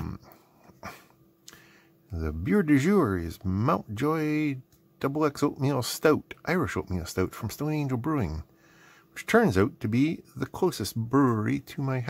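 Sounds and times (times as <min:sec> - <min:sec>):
low hummed voice tone: 0:00.0 - 0:01.1.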